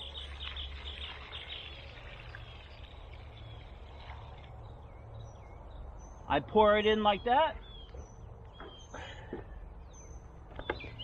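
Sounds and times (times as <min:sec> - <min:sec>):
low outdoor rumble: 0:00.0 - 0:11.0
small birds chirping: 0:00.0 - 0:11.0.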